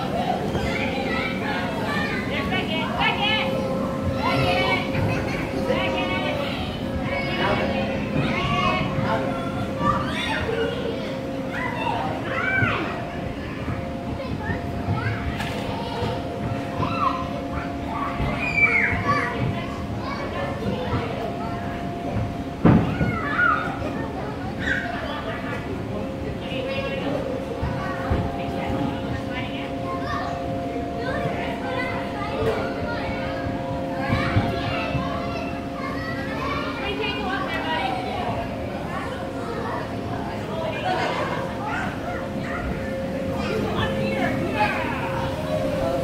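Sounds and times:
background hubbub: 0:00.0 - 0:46.0
children calling out and chattering: 0:00.0 - 0:46.0
steady hum: 0:00.0 - 0:46.0.

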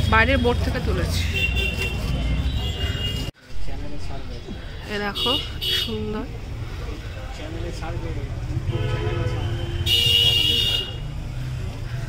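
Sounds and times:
street traffic rumble: 0:00.0 - 0:12.0
buzzy vehicle horn: 0:08.6 - 0:11.1.

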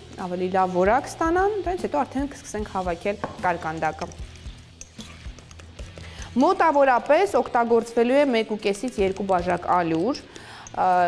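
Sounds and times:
soft background music: 0:00.0 - 0:11.0
spoon stirring dough in glass bowl: 0:03.4 - 0:11.0
woman speaking: 0:06.4 - 0:11.0.

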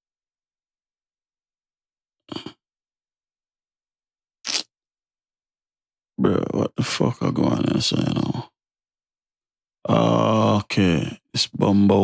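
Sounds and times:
short hiss: 0:04.5 - 0:04.7
man speaking: 0:06.2 - 0:08.5, 0:09.9 - 0:12.0.

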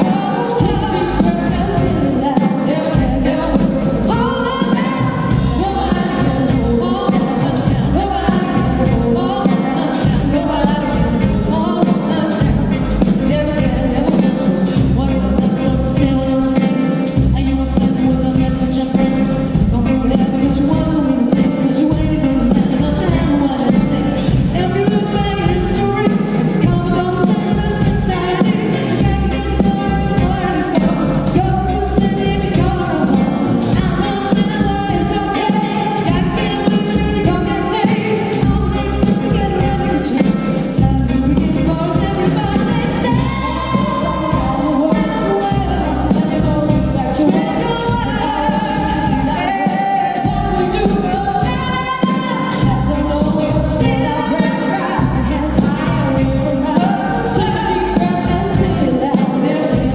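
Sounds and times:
bass: 0:00.0 - 0:59.9
drum kit steady beat: 0:00.0 - 0:59.9
electric guitars: 0:00.0 - 0:59.9
keyboard: 0:00.0 - 0:59.9
woman singing: 0:00.0 - 0:59.9.

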